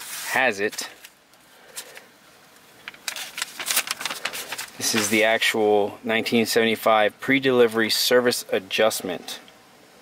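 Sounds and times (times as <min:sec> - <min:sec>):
paper and plastic sleeve rustling: 0:00.0 - 0:02.1, 0:02.8 - 0:05.5.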